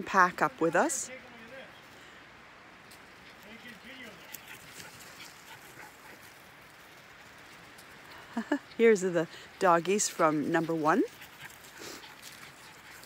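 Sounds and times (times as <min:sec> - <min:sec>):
dogs whimpering and yipping: 0:08.2 - 0:13.0.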